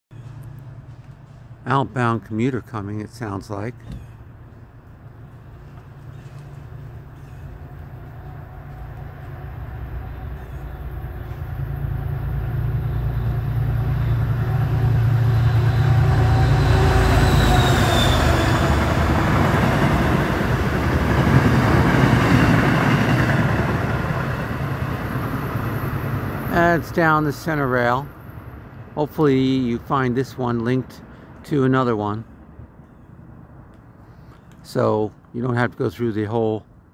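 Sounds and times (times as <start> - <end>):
diesel train passing: 0.1 - 36.9.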